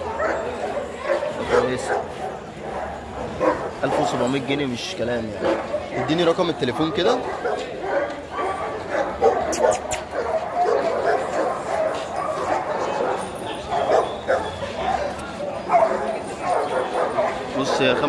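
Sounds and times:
crowd chatter: 0.0 - 18.0
dogs barking and yipping: 0.0 - 18.0.

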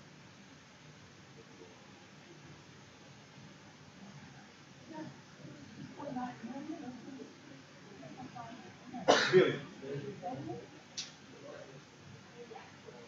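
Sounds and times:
faint room noise: 0.0 - 13.0
person coughing: 9.1 - 9.6.

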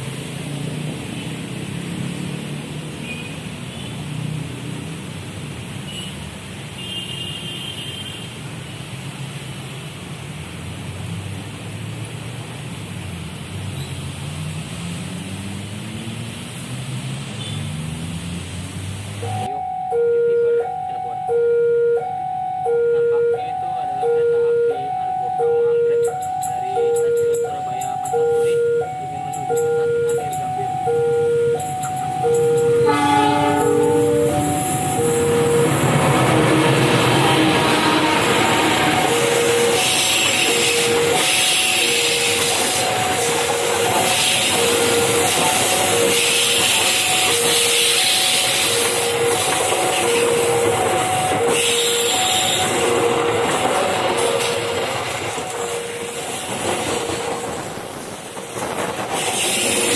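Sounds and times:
level crossing bell dinging: 19.3 - 35.9
train wheels on rails: 26.0 - 59.9
train horn: 31.5 - 56.5.

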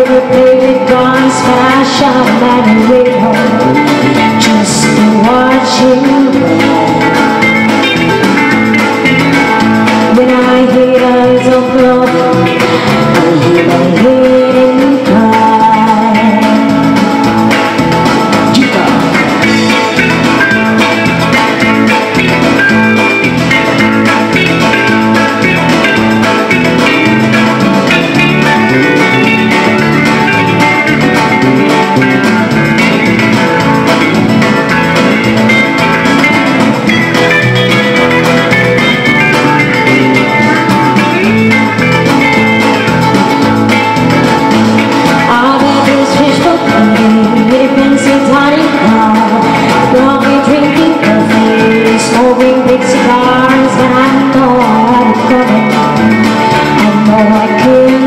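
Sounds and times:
electric lead guitar: 0.0 - 58.0
low bass line: 0.0 - 58.0
strummed acoustic guitar: 0.0 - 58.0.

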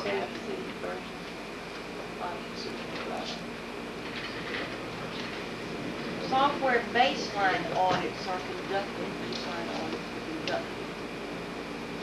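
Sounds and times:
background hiss and hum: 0.0 - 12.0.

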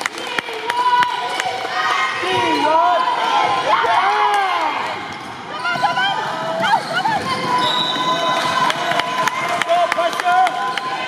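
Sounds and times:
sneakers squeaking: 4.8 - 8.9.

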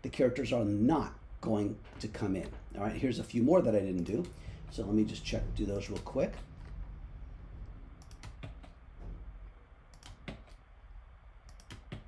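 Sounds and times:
computer keyboard keystrokes: 8.0 - 8.8, 9.9 - 10.6, 11.5 - 12.0.

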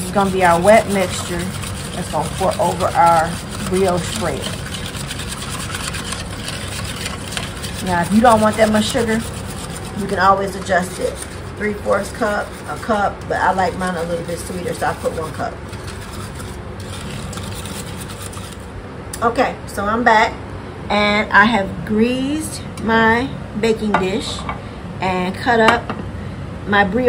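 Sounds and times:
whisk beating in metal bowl: 0.0 - 18.7.

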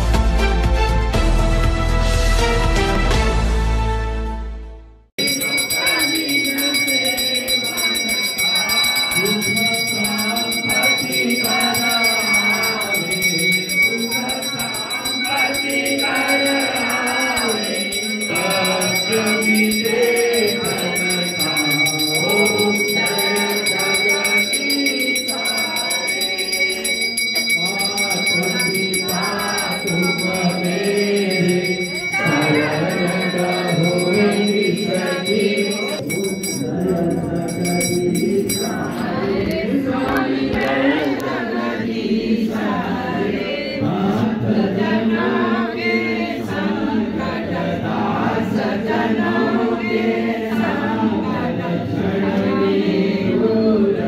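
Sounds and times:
small bell rung rapidly: 5.2 - 39.6
group chanting together: 5.2 - 54.0.

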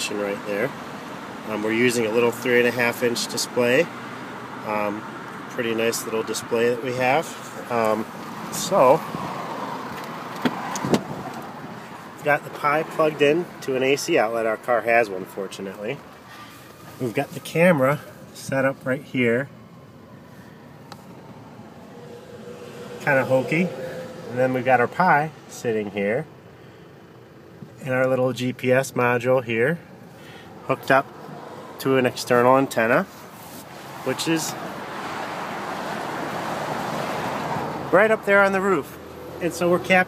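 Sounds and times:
car road and engine noise: 0.0 - 40.0.

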